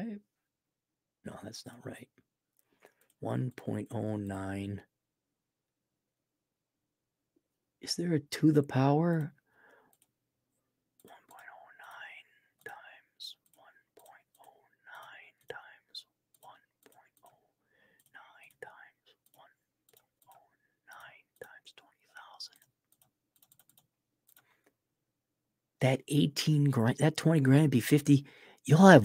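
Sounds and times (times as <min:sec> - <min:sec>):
man whispering and muttering: 0:01.3 - 0:02.2, 0:03.2 - 0:04.9, 0:11.0 - 0:17.5, 0:18.1 - 0:22.7, 0:26.0 - 0:29.0
computer keys typing: 0:09.9 - 0:10.2, 0:11.0 - 0:17.4, 0:18.0 - 0:24.5.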